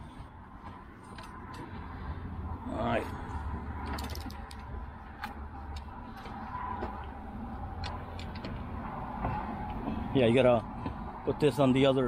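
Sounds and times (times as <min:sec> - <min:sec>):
metal tools clicking and clinking: 0:03.8 - 0:04.7.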